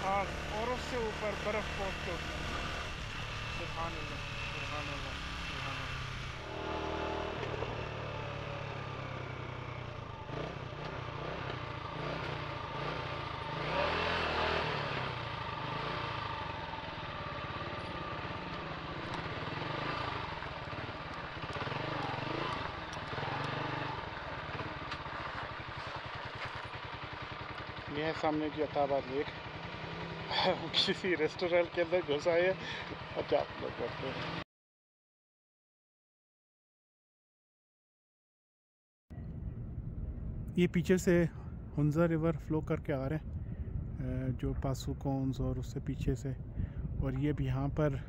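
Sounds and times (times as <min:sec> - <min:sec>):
motorcycle engine running: 0:00.0 - 0:34.4.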